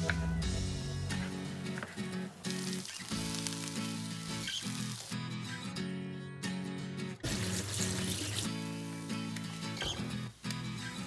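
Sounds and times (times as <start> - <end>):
background music: 0.0 - 11.0
vegetables sizzling in a frying pan: 2.4 - 5.2, 7.3 - 11.0.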